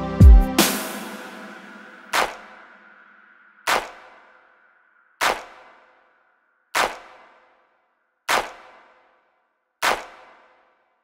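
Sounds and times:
sharp percussion hits: 0:00.2 - 0:04.4.

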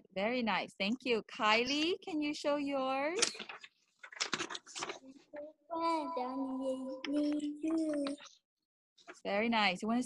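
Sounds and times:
child singing long notes: 0:05.4 - 0:08.2.

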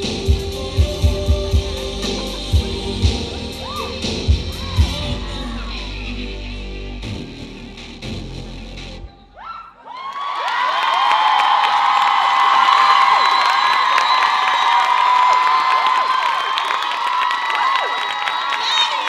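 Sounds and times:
audience cheering and shouting: 0:00.0 - 0:05.8, 0:09.4 - 0:19.0
music: 0:00.0 - 0:09.4.

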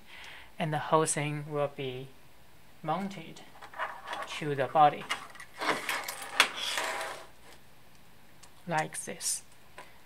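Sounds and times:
parts rustling: 0:03.0 - 0:07.7.

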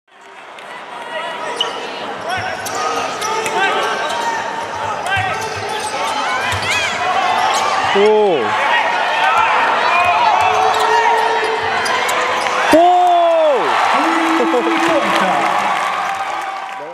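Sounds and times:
sneakers squeaking: 0:01.5 - 0:08.0, 0:09.9 - 0:12.8
players calling out: 0:01.5 - 0:16.2
long drawn-out shout: 0:12.7 - 0:16.7
crowd murmur: 0:13.7 - 0:16.1.

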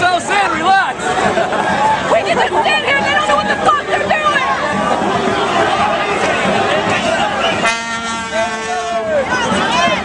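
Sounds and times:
crowd chatter and shouting: 0:00.0 - 0:10.0
vehicle horn: 0:07.5 - 0:09.1.

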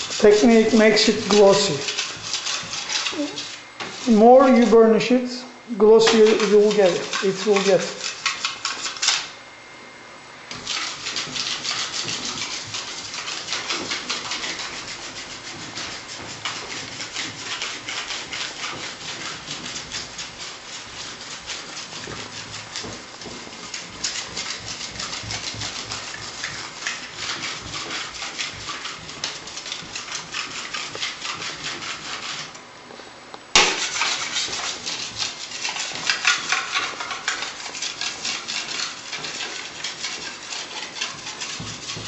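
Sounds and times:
knife scraping over plaster: 0:00.0 - 0:04.8, 0:05.9 - 0:09.4, 0:10.5 - 0:32.6, 0:33.6 - 0:42.0.

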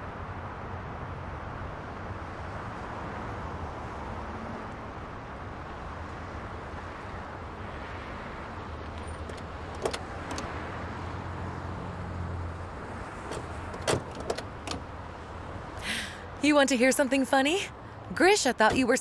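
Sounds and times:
car engine hum: 0:00.0 - 0:19.0
street traffic: 0:00.0 - 0:19.0
car door opening and shutting: 0:08.9 - 0:10.7, 0:13.1 - 0:15.0.

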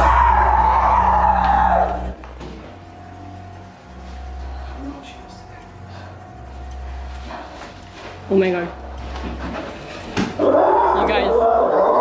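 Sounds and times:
background music over drone: 0:00.0 - 0:12.0
thin steady tone: 0:02.7 - 0:09.2.

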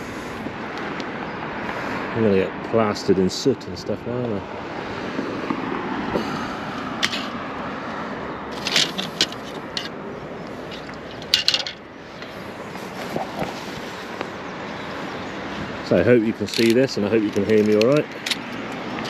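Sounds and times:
metal rods clinking and scraping: 0:08.5 - 0:12.4, 0:16.3 - 0:19.0
sharp clicks and knocks: 0:16.5 - 0:19.0.

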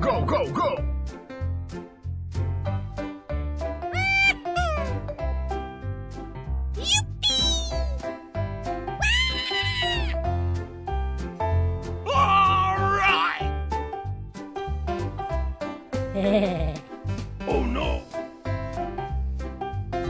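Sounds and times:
drawn-out squealing calls: 0:04.0 - 0:05.0, 0:09.0 - 0:10.2.

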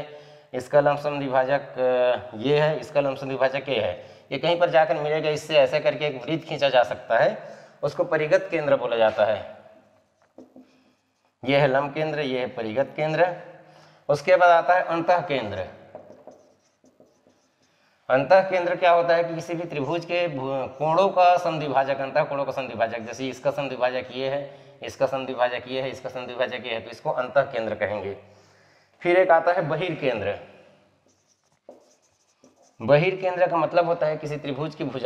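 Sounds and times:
man speaking: 0:00.0 - 0:09.6, 0:11.4 - 0:15.9, 0:18.1 - 0:28.2, 0:29.0 - 0:30.5, 0:32.7 - 0:35.0
marker pen writing on whiteboard: 0:09.8 - 0:11.4, 0:15.7 - 0:18.0, 0:30.8 - 0:33.9.

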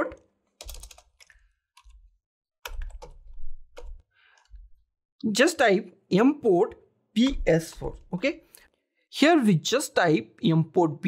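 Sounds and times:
keyboard typing clicks: 0:00.1 - 0:02.0, 0:02.6 - 0:04.5.

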